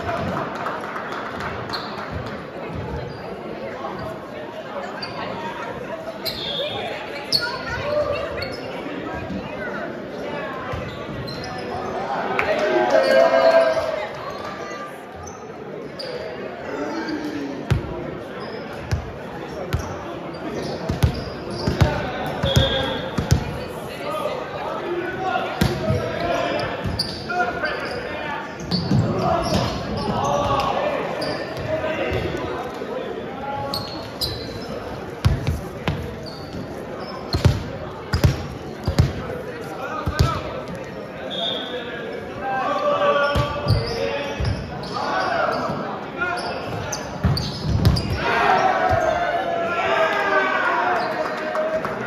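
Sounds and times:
players chattering: 0:00.0 - 0:52.0.

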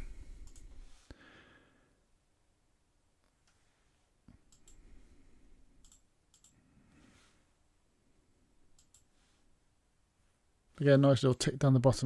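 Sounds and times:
computer mouse clicks: 0:00.4 - 0:00.8, 0:04.3 - 0:04.9, 0:05.8 - 0:06.6, 0:08.7 - 0:09.1.

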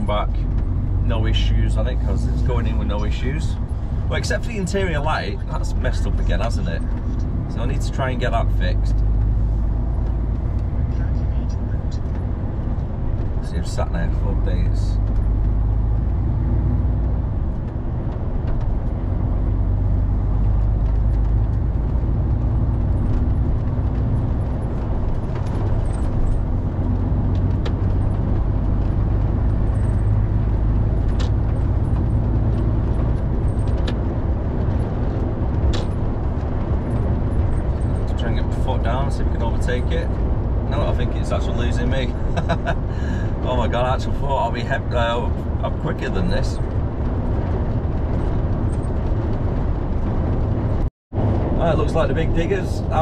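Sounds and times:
lorry engine and road drone: 0:00.0 - 0:53.0.

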